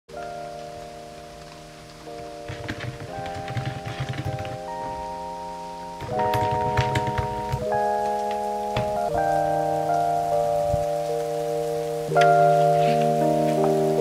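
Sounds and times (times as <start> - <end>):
rain: 0.1 - 14.0
soft music of held chords: 0.1 - 14.0.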